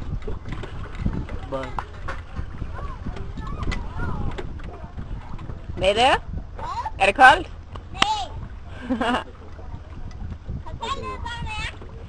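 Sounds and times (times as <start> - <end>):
wind rumble on microphone: 0.0 - 12.0
people talking: 10.7 - 11.8.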